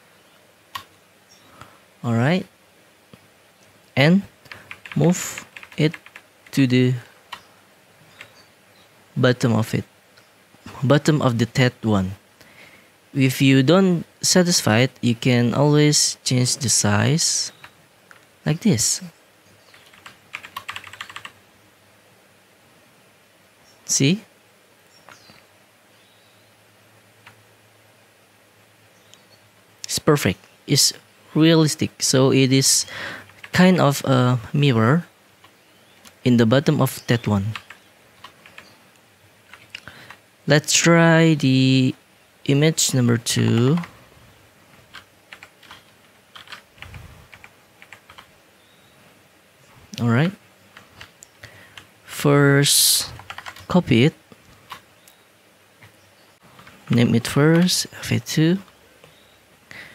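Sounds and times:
keyboard and mouse clicking: 0.7s - 0.9s, 4.4s - 6.2s, 19.7s - 21.4s, 44.9s - 48.3s.

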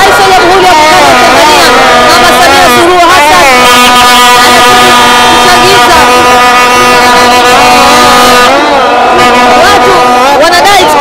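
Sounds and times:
crowd shouting: 0.0s - 11.0s
vuvuzelas blowing: 0.0s - 11.0s.

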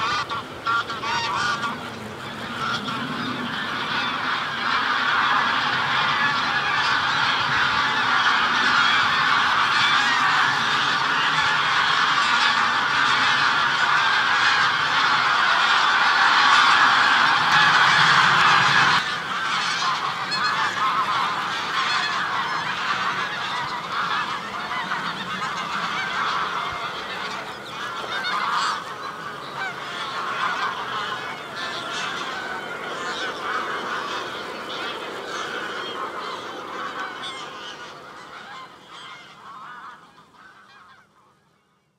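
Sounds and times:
chorus of birds calling: 0.0s - 41.6s.

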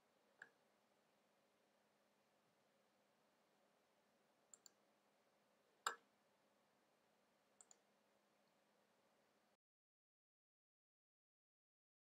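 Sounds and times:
computer mouse double-click: 4.5s - 4.8s, 7.6s - 7.8s.

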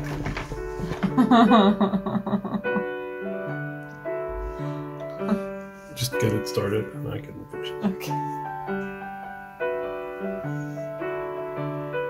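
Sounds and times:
slow piano melody: 0.0s - 12.0s.

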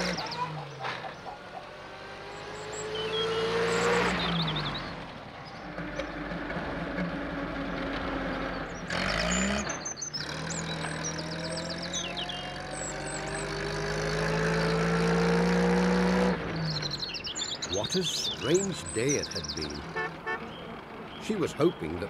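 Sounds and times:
birds chirping: 0.0s - 22.0s
van engine speeding up: 0.0s - 22.0s.

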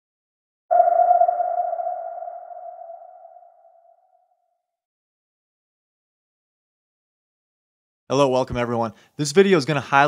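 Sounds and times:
electronic ping: 0.7s - 3.8s.

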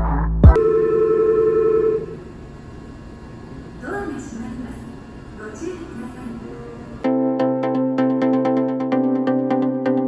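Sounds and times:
faint station background: 0.5s - 7.4s.

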